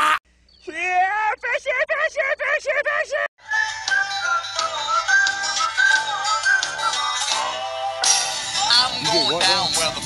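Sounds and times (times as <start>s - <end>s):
music with processed singing voice: 3.4s - 10.0s.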